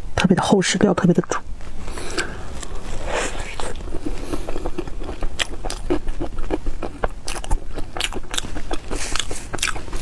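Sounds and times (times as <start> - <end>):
chewing with crunchy clicks: 3.4 - 10.0.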